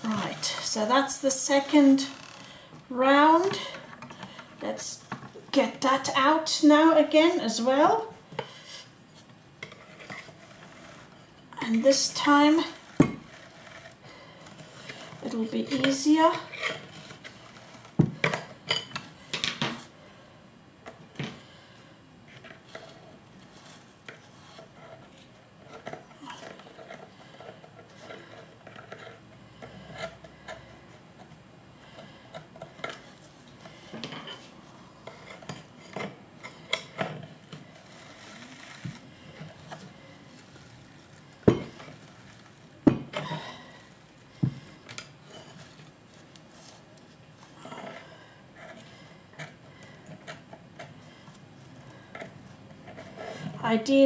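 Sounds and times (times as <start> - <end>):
pick and brush scraping carder: 0.0 - 2.6, 8.4 - 18.2, 22.3 - 53.8.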